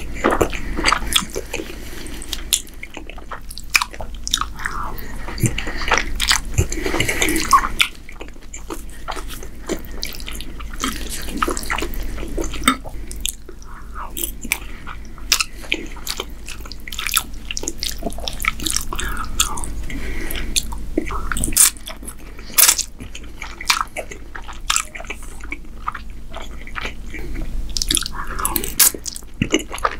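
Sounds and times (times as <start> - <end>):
wet chewing sounds: 0.0 - 29.9.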